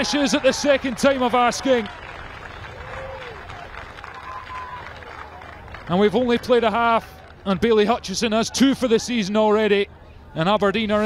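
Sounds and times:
applause: 0:00.0 - 0:07.8.

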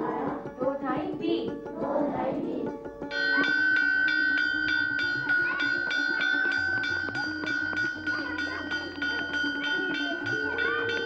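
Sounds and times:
hammer striking metal bell: 0:03.1 - 0:11.0.

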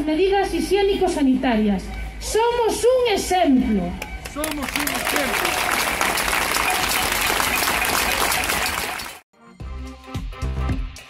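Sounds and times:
crowd applauding: 0:04.2 - 0:09.2.

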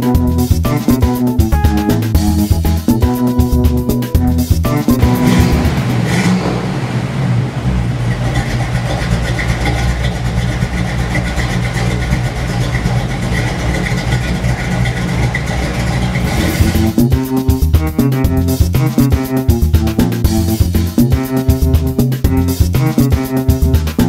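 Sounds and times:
guitar-led music: 0:00.0 - 0:06.0, 0:16.3 - 0:24.0
car engine running: 0:00.0 - 0:24.0.

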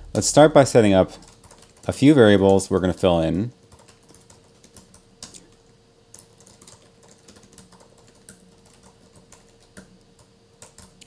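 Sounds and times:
faint steady hum: 0:00.0 - 0:11.0
keyboard typing: 0:00.8 - 0:02.6, 0:03.6 - 0:11.0.

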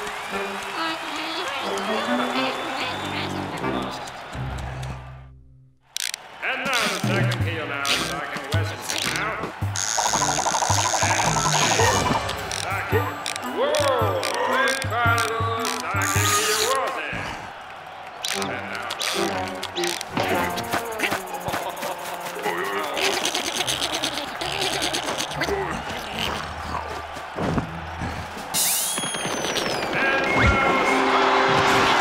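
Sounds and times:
comic sound effects: 0:06.5 - 0:16.8, 0:18.3 - 0:26.4
cartoon music with steady beat: 0:06.9 - 0:16.6, 0:18.3 - 0:23.2.

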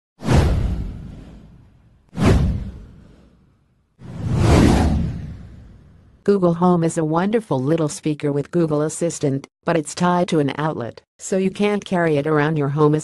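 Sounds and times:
whoosh sound effects: 0:02.2 - 0:03.4, 0:04.0 - 0:06.1.

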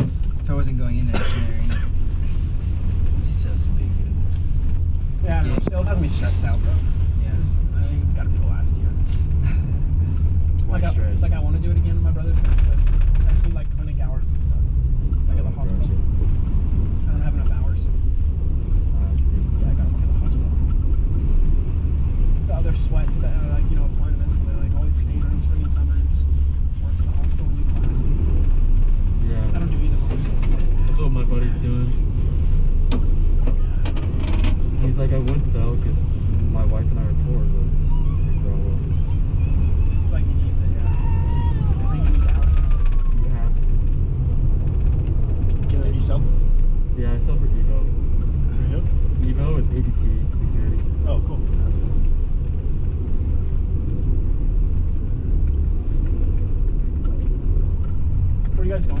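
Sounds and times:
gondola cabin low rumble: 0:00.0 - 0:59.0
indistinct passenger voices: 0:00.0 - 0:59.0.

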